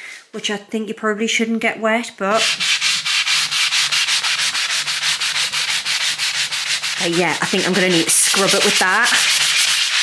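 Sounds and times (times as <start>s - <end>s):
sanding sponge scrubbing wet wood: 2.4s - 10.0s.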